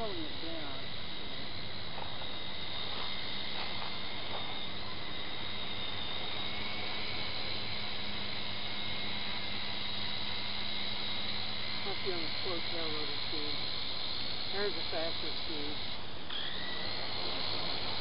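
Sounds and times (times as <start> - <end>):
toy helicopter rotors whining: 0.0 - 18.0.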